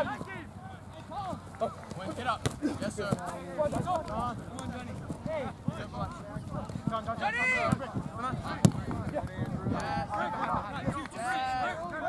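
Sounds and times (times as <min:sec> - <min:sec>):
people shouting across a field: 0:05.4 - 0:12.0.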